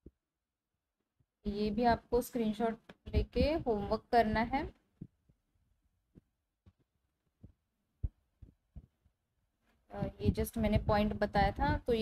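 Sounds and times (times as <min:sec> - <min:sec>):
stylus tapping on tablet screen: 0:06.1 - 0:09.2.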